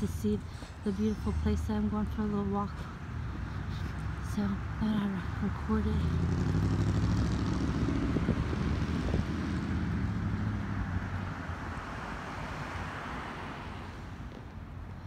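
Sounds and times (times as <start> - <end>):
passing engine drone: 5.8 - 14.0.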